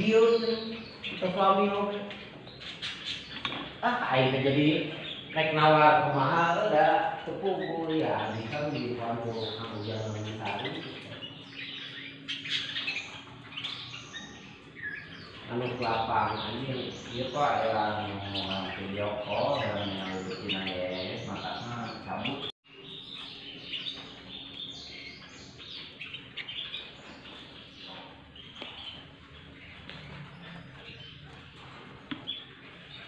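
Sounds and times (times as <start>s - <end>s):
canaries chirping: 0.0s - 33.0s.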